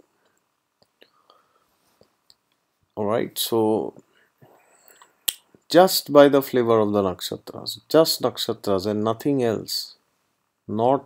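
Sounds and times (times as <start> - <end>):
soft breath: 1.0 - 2.2, 4.0 - 5.2
mouth clicks: 4.9 - 5.6.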